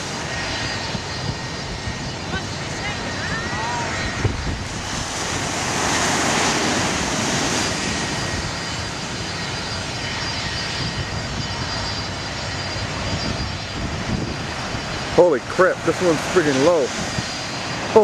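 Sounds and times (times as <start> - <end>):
airplane engine whine: 0.0 - 18.0.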